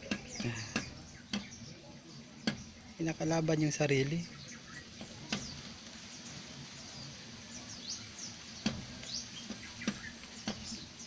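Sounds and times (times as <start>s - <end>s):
rooster pecking window glass: 0.0s - 1.8s, 2.4s - 3.0s, 4.8s - 6.0s, 8.6s - 11.0s
small birds chirping: 0.0s - 11.0s.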